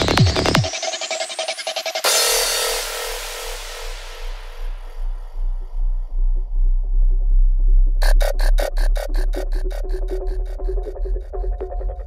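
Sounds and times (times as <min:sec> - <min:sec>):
deep bass: 0:00.0 - 0:00.7, 0:03.0 - 0:12.0
pulsing electronic beat: 0:00.0 - 0:04.5, 0:08.0 - 0:12.0.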